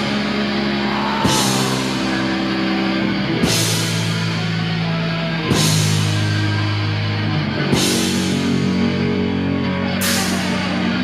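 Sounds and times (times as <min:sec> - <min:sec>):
metal band playing: 0:00.0 - 0:11.0.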